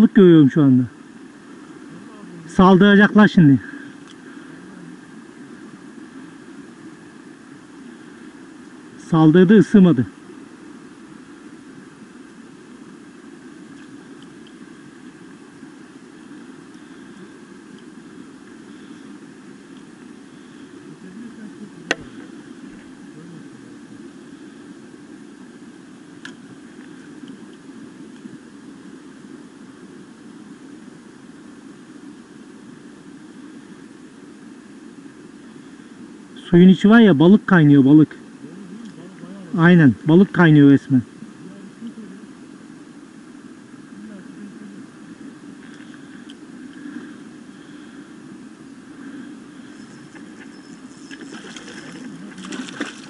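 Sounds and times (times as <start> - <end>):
low outdoor background noise: 0.0 - 53.0.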